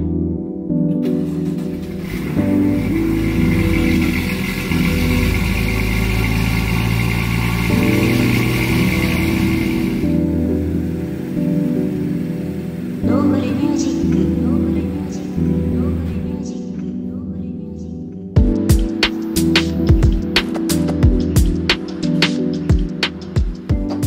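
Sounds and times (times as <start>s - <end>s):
background music: 0.0s - 24.0s
car engine running: 1.2s - 16.4s.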